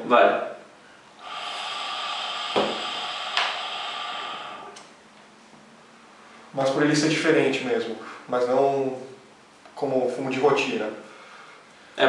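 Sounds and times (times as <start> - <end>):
hookah water bubbling: 1.2 - 5.0.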